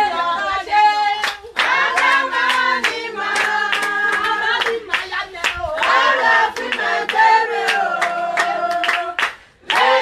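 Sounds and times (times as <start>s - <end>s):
group singing: 0.0s - 10.0s
hand claps: 1.2s - 10.0s.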